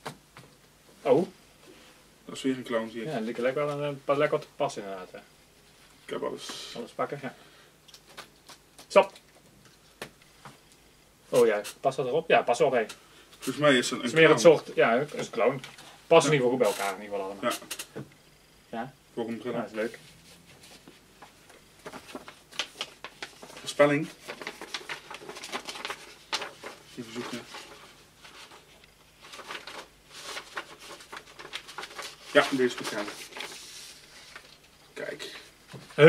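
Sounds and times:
paper rustling: 19.8 - 34.8.

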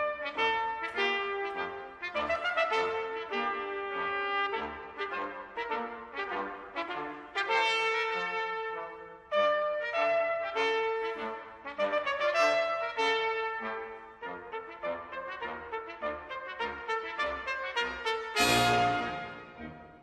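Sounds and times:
lower brass parts: 0.0 - 20.0
trumpets playing melody: 0.0 - 20.0.

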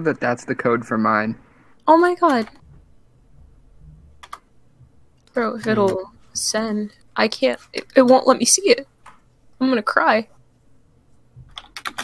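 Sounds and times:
low microphone hum: 0.0 - 11.6
computer clicks: 2.2 - 2.6, 4.2 - 4.5.

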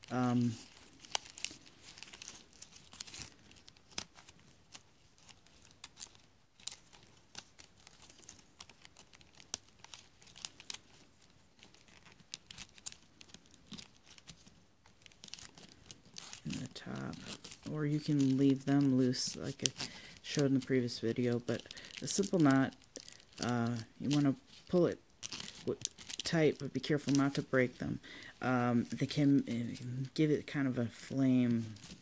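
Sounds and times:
palm leaf strips crinkling: 0.0 - 32.0.

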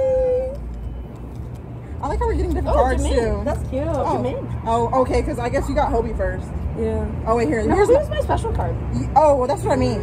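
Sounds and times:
woman's high-pitched aww: 0.0 - 0.6.

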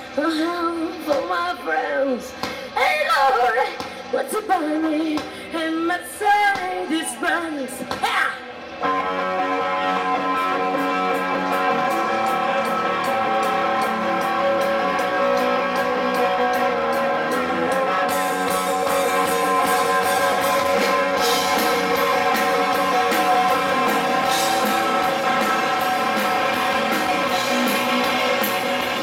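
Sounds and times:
woman singing: 0.1 - 8.4
rock band playing: 7.7 - 29.0.

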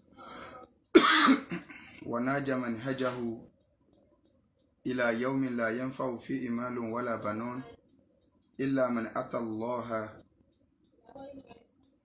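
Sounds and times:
man inhaling: 0.1 - 0.7
man coughing: 1.0 - 2.0
throat clearing: 1.0 - 2.0.

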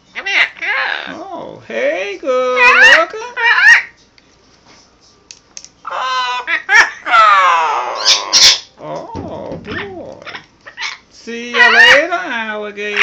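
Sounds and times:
parrot calling loudly: 0.1 - 1.2, 2.5 - 3.9, 5.8 - 8.8, 9.6 - 12.2.

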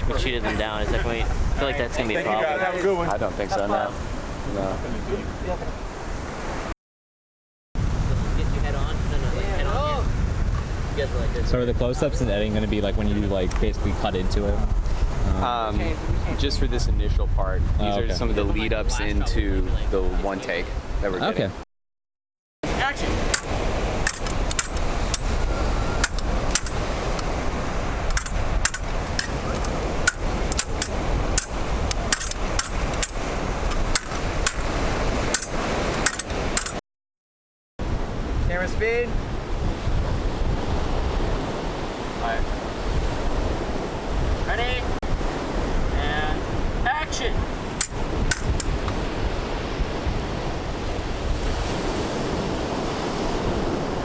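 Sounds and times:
surf: 0.0 - 6.7, 7.8 - 21.6, 22.6 - 36.8, 37.8 - 54.0
wind: 0.0 - 6.8, 7.8 - 21.6, 22.6 - 36.8, 37.8 - 54.0
short sharp clicks: 28.1 - 34.7.

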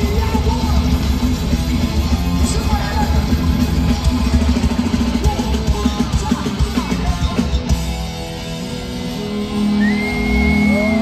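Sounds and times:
bass guitar: 0.0 - 11.0
distorted electric guitars: 0.0 - 11.0
drums: 0.0 - 11.0.

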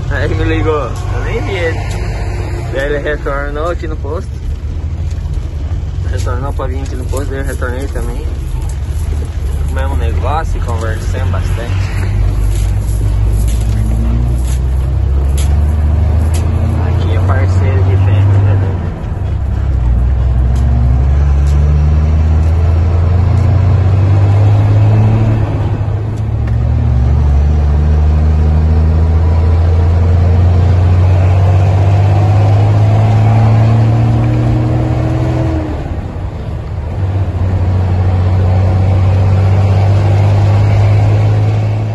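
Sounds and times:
truck diesel engine under load: 0.0 - 41.9.

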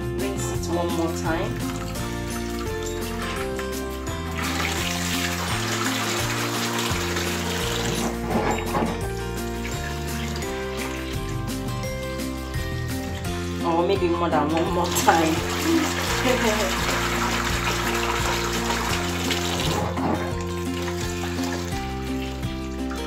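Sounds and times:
background music: 0.0 - 23.0
water running and splashing: 1.1 - 13.5, 14.5 - 23.0.

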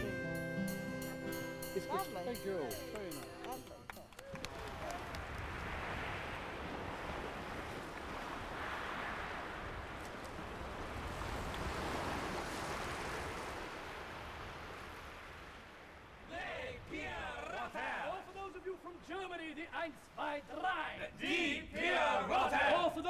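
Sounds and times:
surf washing over pebbles: 4.5 - 19.9.

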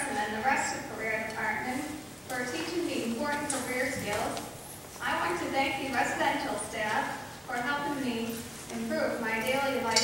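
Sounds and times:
woman speaking: 0.0 - 10.0.

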